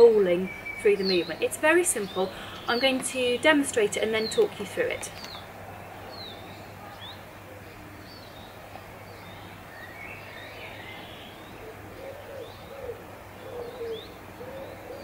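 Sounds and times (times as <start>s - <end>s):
pigeon cooing: 11.6s - 15.0s.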